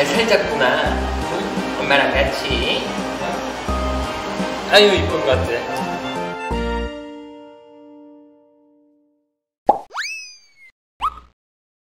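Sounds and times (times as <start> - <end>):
background music chord: 0.0 - 9.2.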